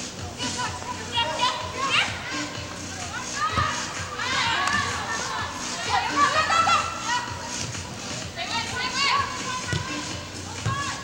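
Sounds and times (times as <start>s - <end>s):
women shouting: 3.1s - 7.4s, 8.4s - 11.0s.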